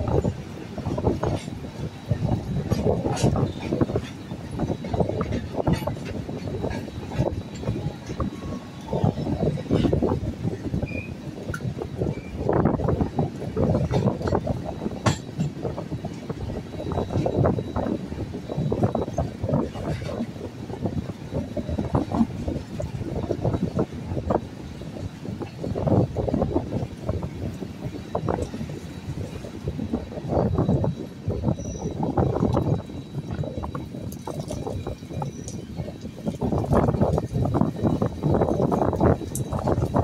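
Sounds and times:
train knocks and clatter: 0.0s - 40.0s
train wheels rumbling on rail: 0.0s - 40.0s
wind buffeting microphone: 0.0s - 40.0s.

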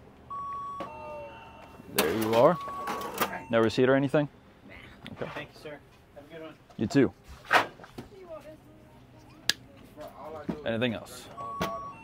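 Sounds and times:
card terminal beeps: 0.3s - 3.8s, 11.2s - 12.0s.

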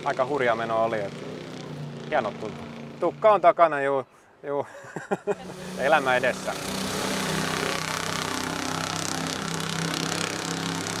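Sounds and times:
speedboat engine drone: 5.3s - 11.0s.

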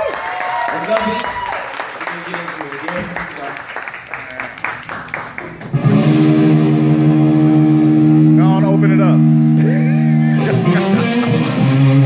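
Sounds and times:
people clapping: 0.0s - 5.8s
live band electric guitar chord: 5.7s - 12.0s.

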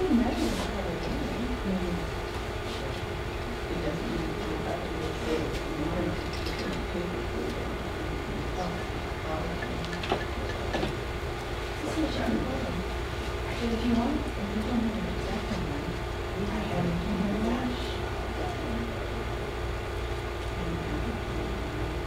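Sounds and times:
faint murmured voices: 0.0s - 22.0s
steady low hum: 0.0s - 22.0s.

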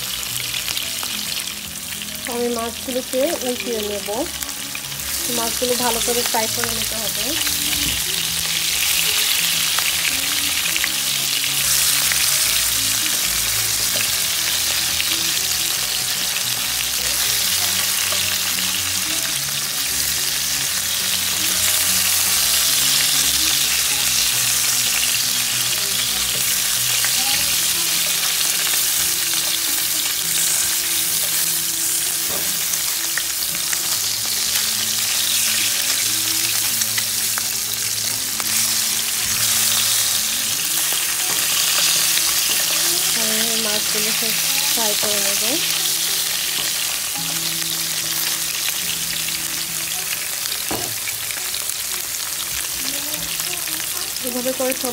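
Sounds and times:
fish sizzling in hot oil: 0.0s - 54.9s.

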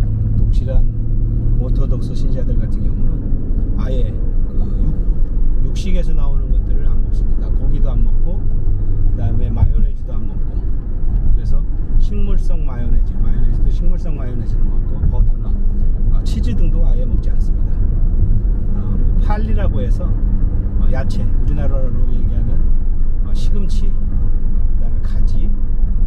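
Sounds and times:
car engine and road rumble: 0.0s - 26.0s
man talking: 0.4s - 1.0s, 1.6s - 3.2s, 3.8s - 5.0s, 5.6s - 8.4s, 9.1s - 10.6s, 11.3s - 17.8s, 18.7s - 20.2s, 20.8s - 22.6s, 23.2s - 24.0s, 24.8s - 25.5s.

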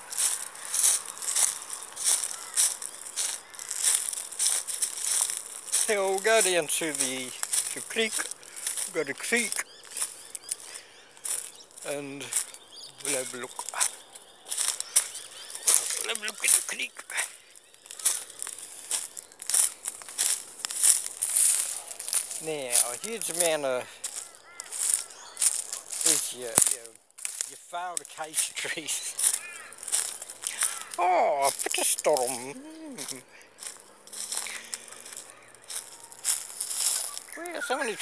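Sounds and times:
footsteps crunching dry leaves: 0.0s - 38.0s.

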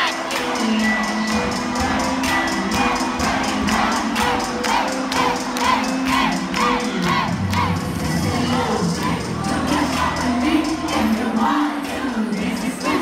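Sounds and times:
crowd cheering and shouting: 0.0s - 13.0s
dance music with steady beat: 0.0s - 13.0s.

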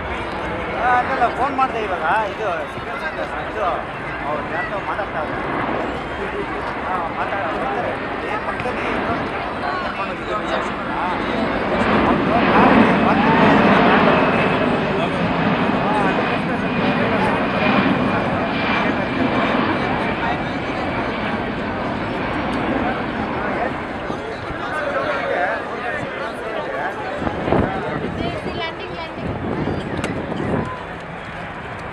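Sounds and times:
jet engines roaring: 0.0s - 31.9s
voices: 0.0s - 31.9s.

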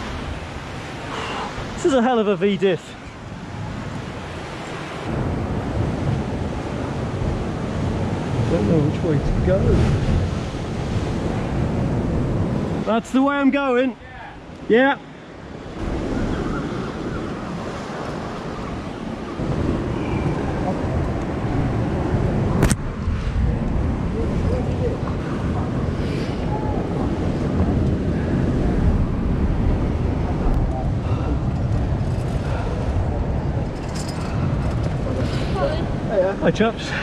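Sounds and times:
wind buffeting microphone: 2.9s - 13.0s, 14.0s - 37.0s.

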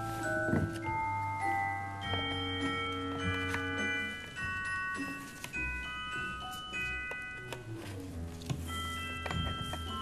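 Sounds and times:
background music of held tones: 0.0s - 10.0s.

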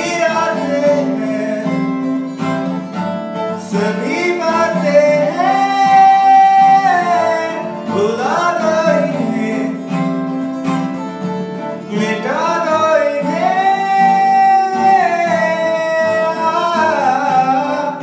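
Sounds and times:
man singing: 0.0s - 2.4s, 3.5s - 10.4s, 11.6s - 18.0s
acoustic guitar: 0.0s - 18.0s.

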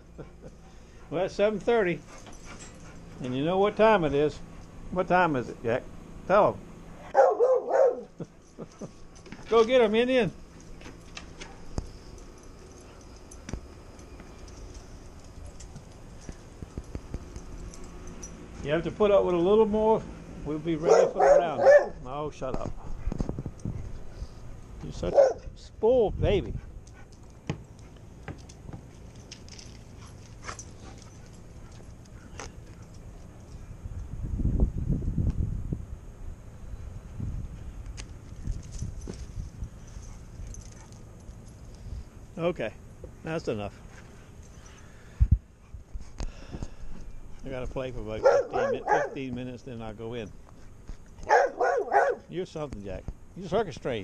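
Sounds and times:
low steady rumble: 0.0s - 54.0s.

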